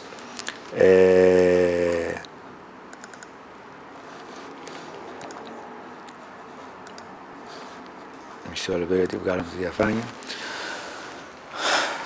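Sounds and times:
man saying eh: 0:00.7 - 0:02.3
laptop keyboard clicks: 0:02.9 - 0:03.3, 0:05.2 - 0:05.6, 0:06.8 - 0:07.1.

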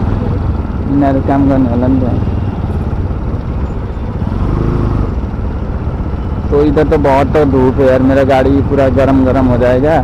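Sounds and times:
motorbike engine hum: 0:00.0 - 0:10.0.

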